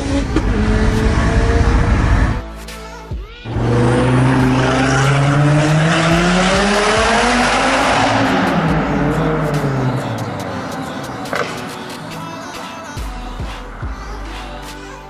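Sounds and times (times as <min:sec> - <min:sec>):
car engine accelerating in tunnel: 0:00.0 - 0:02.4, 0:03.5 - 0:11.6.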